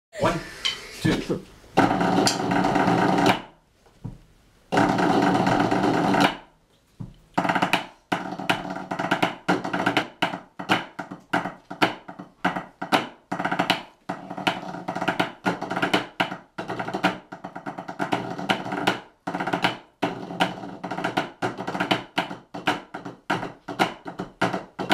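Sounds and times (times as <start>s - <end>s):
drummers playing practice pads: 0.1s - 3.5s, 4.7s - 6.4s, 7.1s - 24.9s.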